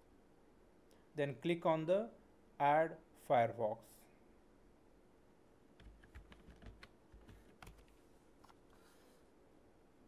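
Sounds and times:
typing on computer keyboard: 5.8s - 8.0s.

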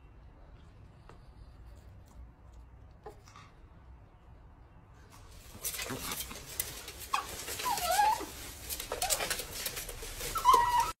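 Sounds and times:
pets scuffling: 5.0s - 11.0s
pet whining: 5.6s - 11.0s.

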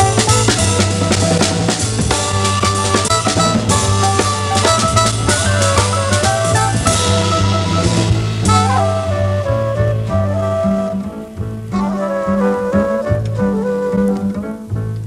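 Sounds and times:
wind instrument melody: 0.0s - 14.9s
double bass line: 0.0s - 15.0s.

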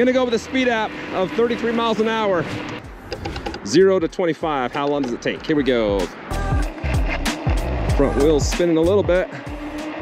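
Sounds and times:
background music: 0.0s - 10.0s
electric scooter motor and tyres: 0.0s - 10.0s.

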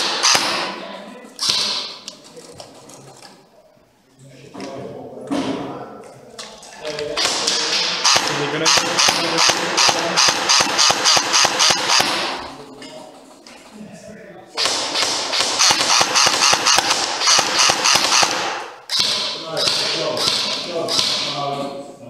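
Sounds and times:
airsoft gun rapid shots: 0.0s - 0.8s, 7.1s - 12.5s, 14.6s - 21.2s.

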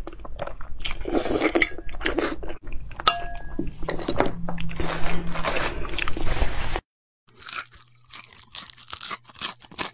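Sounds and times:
crisp crunching and crackling: 4.6s - 9.9s.

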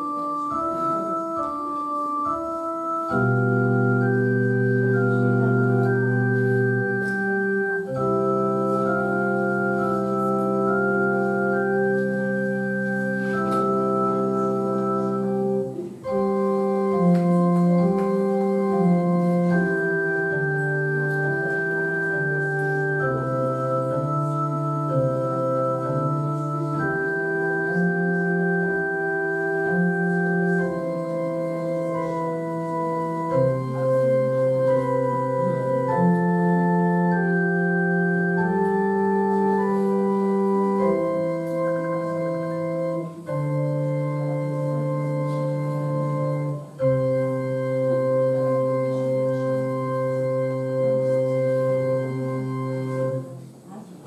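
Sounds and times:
organ chords on electronic keyboard: 0.0s - 53.7s.

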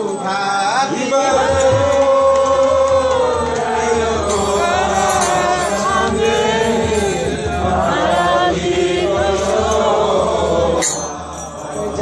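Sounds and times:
voices chanting in song: 0.0s - 12.0s
drum beating: 1.3s - 11.9s.

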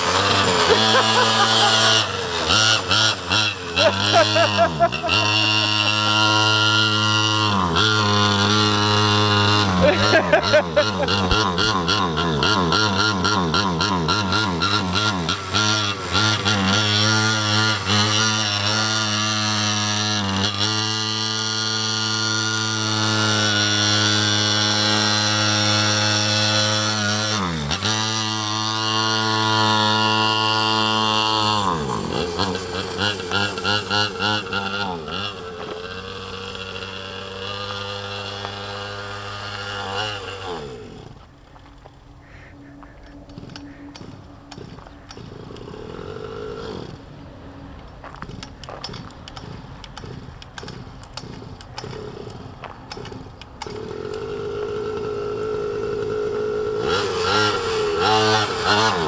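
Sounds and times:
small engine revving: 0.0s - 59.0s.

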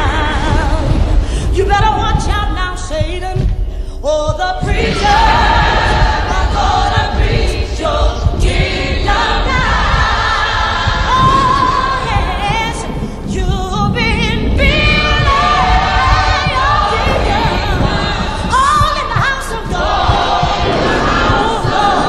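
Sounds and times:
backing music: 0.0s - 22.0s
gospel choir singing: 4.4s - 22.0s.

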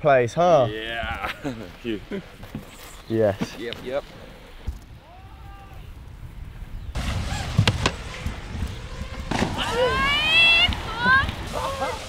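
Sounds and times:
wind: 0.0s - 12.0s
water noise: 3.8s - 12.0s
person exclaiming ooh: 5.0s - 5.9s.

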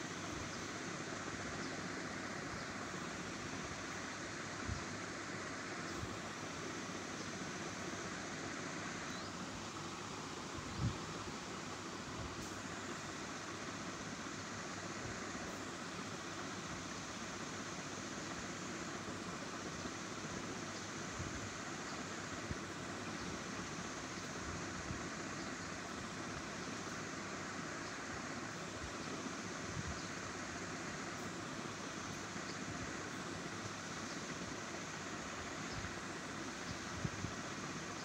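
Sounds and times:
steady background hiss: 0.0s - 38.0s.

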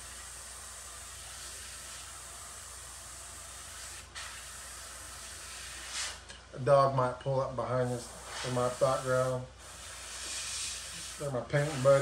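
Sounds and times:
airbrush spraying paint: 0.0s - 6.3s, 7.8s - 12.0s.

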